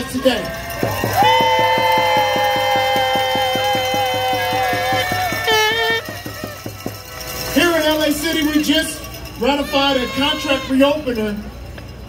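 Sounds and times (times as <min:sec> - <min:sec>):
fast even drumbeat: 0:00.7 - 0:08.5
horns holding long notes: 0:01.1 - 0:11.3.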